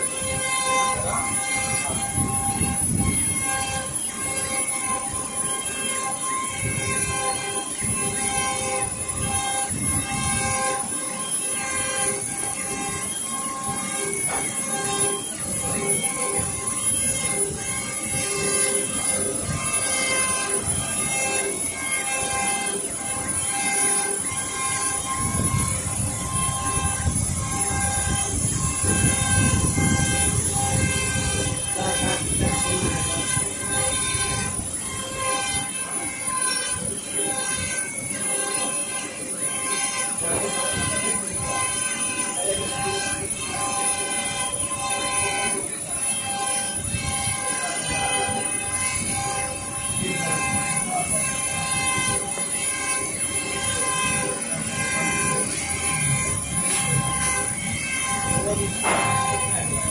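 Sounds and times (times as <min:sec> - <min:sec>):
printer carriage drive whining: 0:00.0 - 0:59.9.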